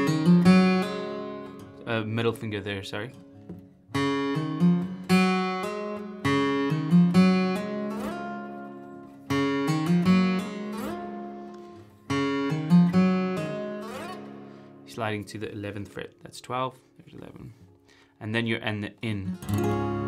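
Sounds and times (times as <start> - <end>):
acoustic guitar riff: 0.0 - 20.0
guitar slide up the neck: 10.7 - 11.8, 13.8 - 14.6.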